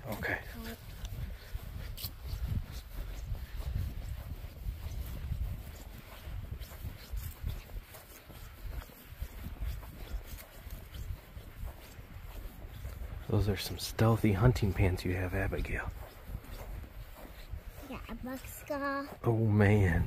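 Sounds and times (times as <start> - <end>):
footsteps on grass: 0.0 - 20.0.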